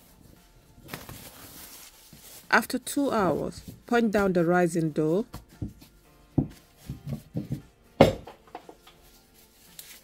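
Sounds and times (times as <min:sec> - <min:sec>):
cling film and cloth rustling: 0:00.0 - 0:04.5, 0:08.6 - 0:10.0.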